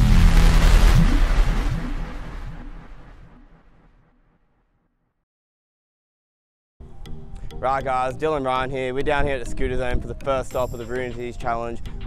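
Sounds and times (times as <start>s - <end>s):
deep rumbling bass hit: 0.0s - 3.9s
rising whoosh: 0.0s - 3.9s.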